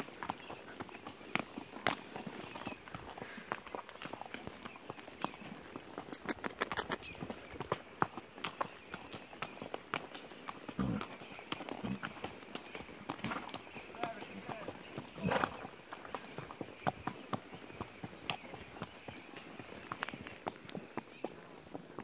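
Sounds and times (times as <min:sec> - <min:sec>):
horse hooves on stony trail: 0:00.0 - 0:22.0.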